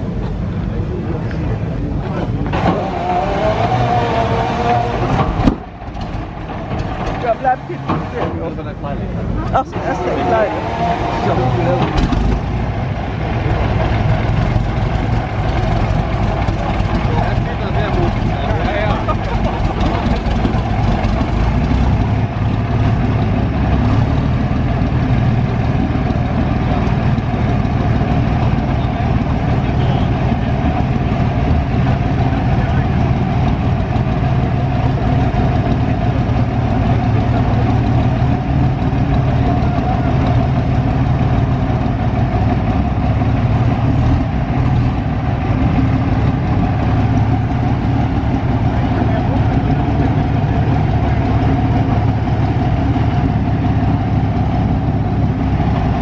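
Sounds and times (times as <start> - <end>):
racing car engine idling: 0.0 - 56.0.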